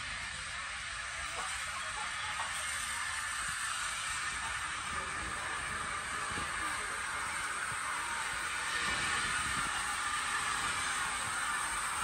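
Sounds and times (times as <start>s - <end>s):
steam locomotive running slowly: 0.0s - 12.0s.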